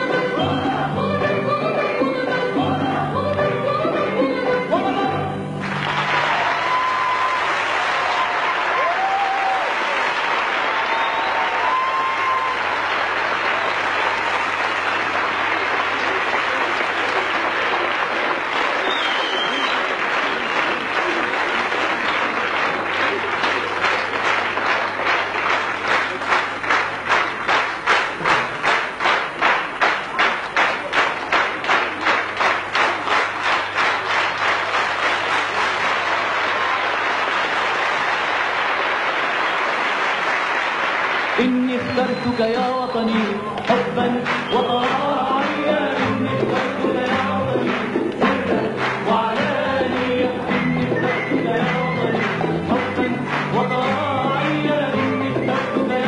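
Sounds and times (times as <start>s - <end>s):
rhythmic clapping in unison: 0.0s - 3.4s, 5.6s - 56.0s
audience applauding: 5.6s - 56.0s.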